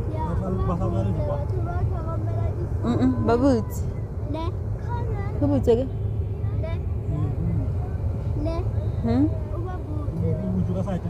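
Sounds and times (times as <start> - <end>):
low rumble of car moving: 0.0 - 11.0.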